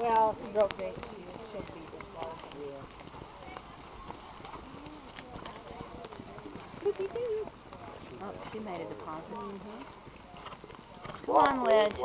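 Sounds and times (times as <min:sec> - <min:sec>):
people talking: 0:00.0 - 0:02.8, 0:04.6 - 0:07.5
horse hoofbeats on dirt: 0:00.0 - 0:12.0.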